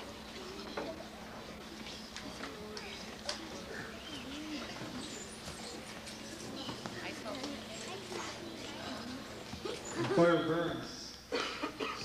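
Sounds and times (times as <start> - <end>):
children chattering and calling out: 0.0 - 10.7.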